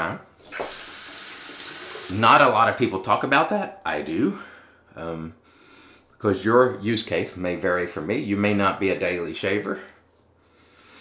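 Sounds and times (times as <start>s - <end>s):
tap water running into sink: 0.5s - 2.2s.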